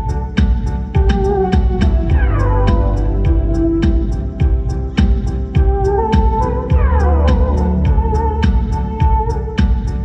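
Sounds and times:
electronic drum beat: 0.0s - 10.0s
synth-pop music: 0.0s - 10.0s.

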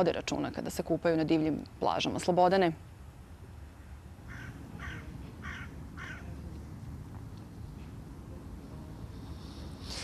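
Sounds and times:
bird calling: 4.3s - 6.4s.

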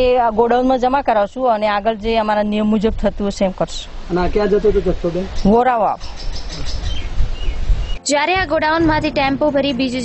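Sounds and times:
bird chirps: 4.6s - 8.0s.

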